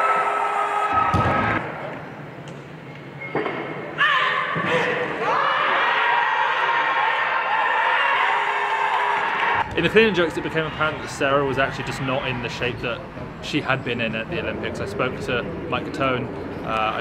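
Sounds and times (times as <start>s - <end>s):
crowd voices and shouting: 3.7s - 17.0s.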